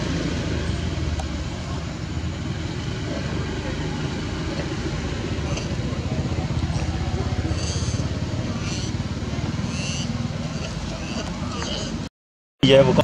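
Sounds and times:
motor engine running at low revs: 0:00.0 - 0:12.1.

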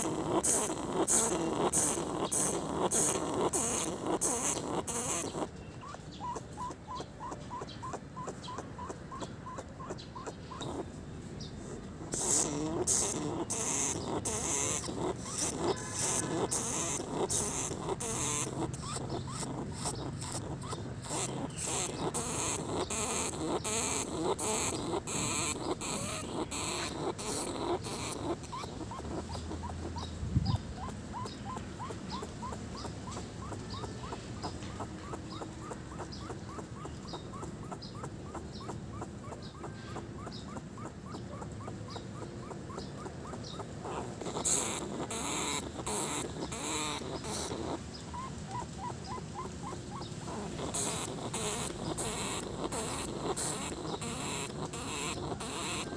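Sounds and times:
small chirps: 0:00.0 - 0:10.8, 0:12.1 - 0:55.9.

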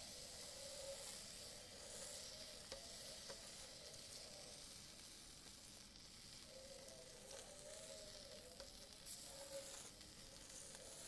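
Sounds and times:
crepe sizzling on hot plate: 0:00.0 - 0:11.0.

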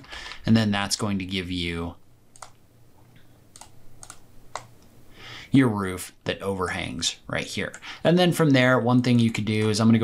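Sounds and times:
faint low hum: 0:00.0 - 0:10.0
computer input clicks: 0:03.5 - 0:04.7.

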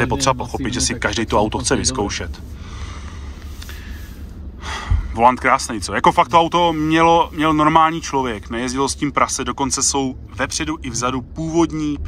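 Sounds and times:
car cabin engine drone: 0:00.0 - 0:12.0
sharp intake of breath: 0:02.5 - 0:05.2.

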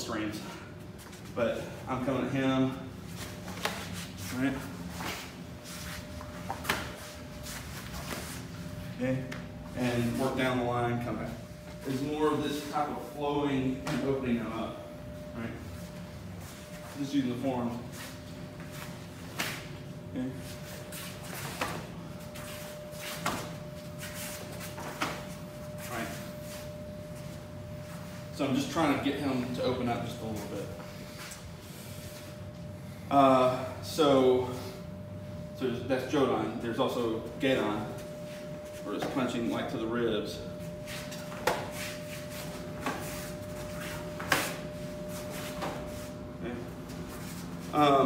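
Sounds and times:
feet shuffling on foam mats: 0:03.0 - 0:08.8, 0:40.6 - 0:46.2.

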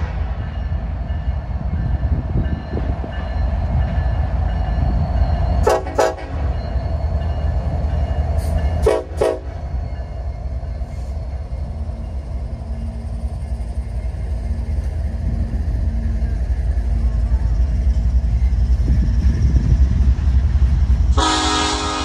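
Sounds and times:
diesel train rumbling past: 0:00.0 - 0:22.0
train air horn blasts: 0:05.6 - 0:06.5, 0:08.8 - 0:09.6, 0:21.2 - 0:22.0.

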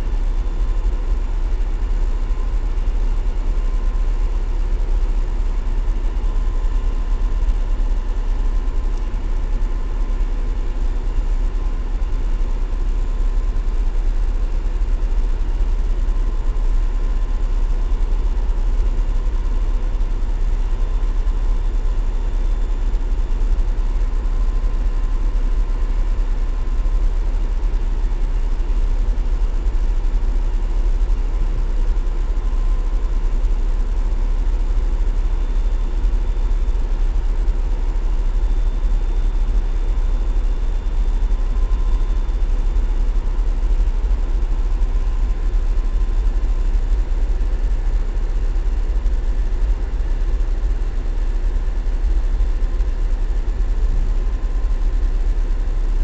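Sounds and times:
faint steady hum: 0:00.0 - 0:56.0.

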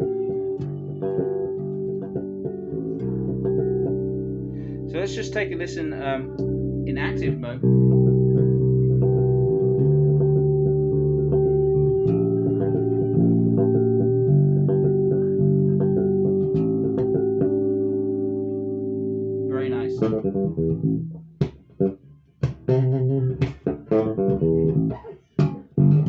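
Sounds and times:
electric bass playing chords: 0:00.0 - 0:26.0.

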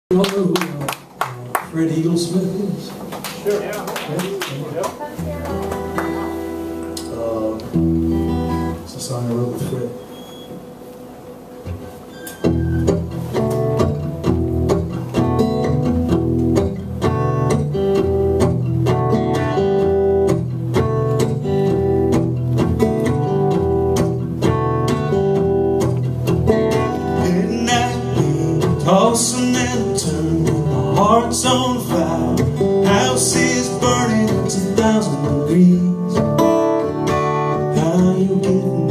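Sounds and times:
acoustic guitar strumming: 0:04.8 - 0:38.9.

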